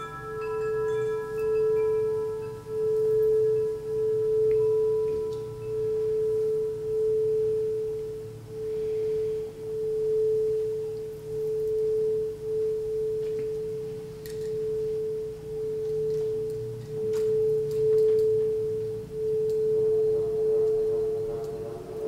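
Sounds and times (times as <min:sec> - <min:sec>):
faint low hum: 0:00.0 - 0:22.0
singing bowl tone: 0:00.0 - 0:22.0.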